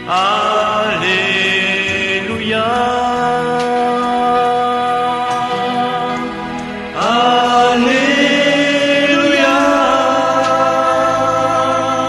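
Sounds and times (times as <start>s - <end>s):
voices singing held notes: 0.0s - 12.0s.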